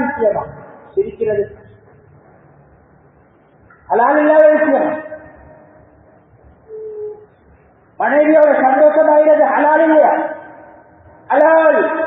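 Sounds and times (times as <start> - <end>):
man speaking: 0.0 - 1.7, 3.9 - 5.4, 8.0 - 12.0.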